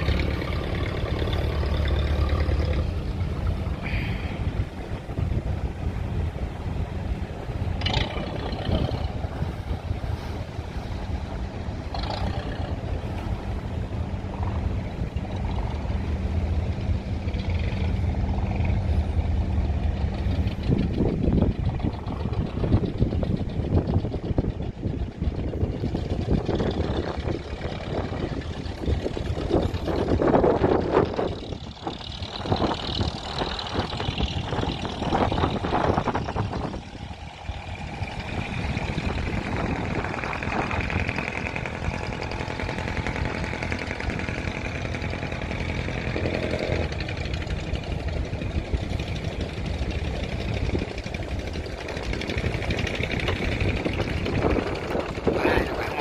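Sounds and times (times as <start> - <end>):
boat engines chugging: 0.0 - 56.0
engine drone: 0.0 - 56.0.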